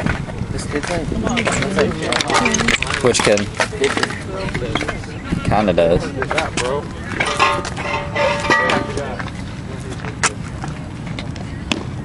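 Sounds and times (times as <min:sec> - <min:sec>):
crowd voices: 0:00.0 - 0:11.6.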